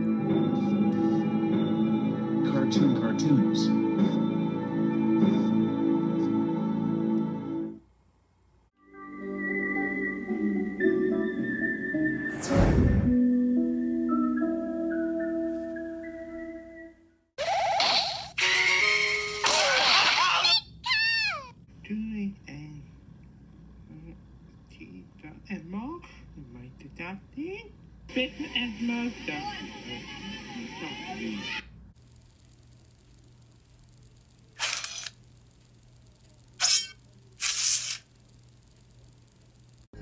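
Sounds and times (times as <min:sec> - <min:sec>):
faint steady hum: 0:00.0 - 0:12.1, 0:20.5 - 0:40.0
falling swoops: 0:12.3 - 0:13.2.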